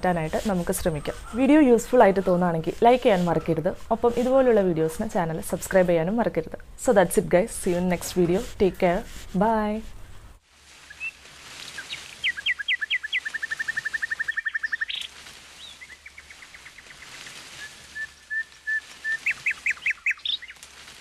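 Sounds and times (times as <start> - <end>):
songbird singing: 10.8 - 20.7.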